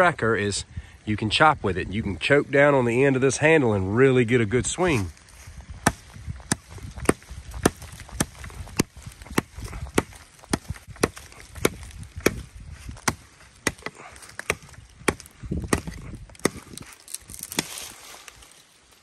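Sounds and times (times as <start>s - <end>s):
knife chopping into tree: 5.8s - 18.2s.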